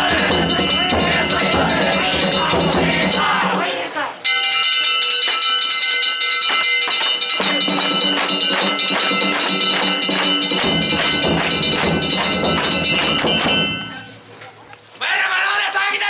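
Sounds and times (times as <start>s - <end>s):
deep drum beats: 0.0s - 3.8s, 7.4s - 14.3s
metal hand gongs ringing: 4.2s - 14.2s.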